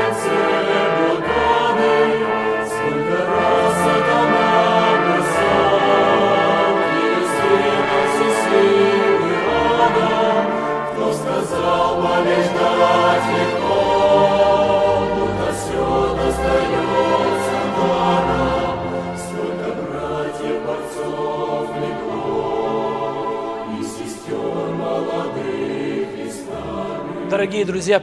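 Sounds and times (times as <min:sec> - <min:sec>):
choir singing: 0:00.0 - 0:28.0.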